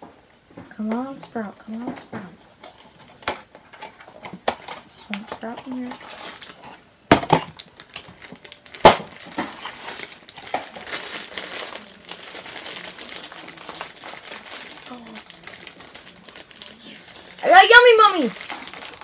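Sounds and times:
foil wrapper crinkling: 5.4 - 19.0.

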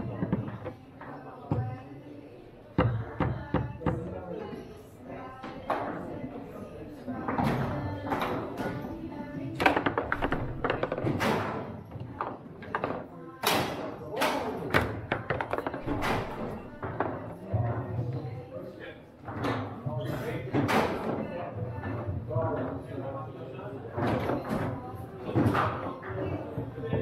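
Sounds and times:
background music: 0.0 - 18.6
murmur of voices: 0.0 - 27.0.

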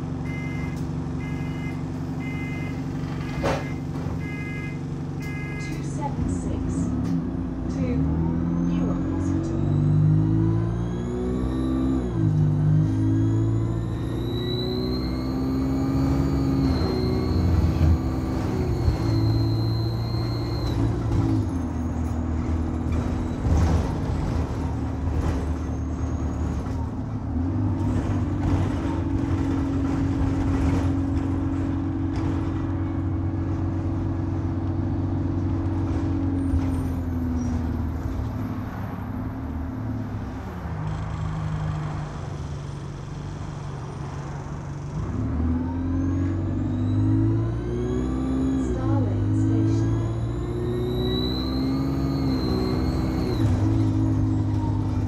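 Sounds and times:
bus turbocharger whine: 0.0 - 55.0
diesel bus engine accelerating: 0.0 - 55.0.

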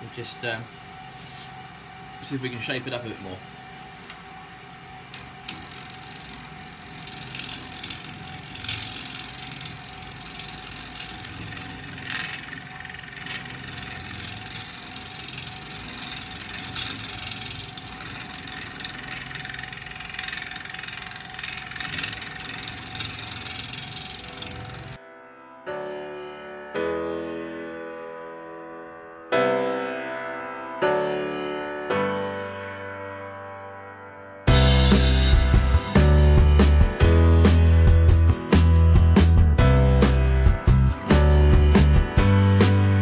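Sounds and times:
lathe motor hum: 0.0 - 25.0
turning tool scraping wood: 5.5 - 25.0.

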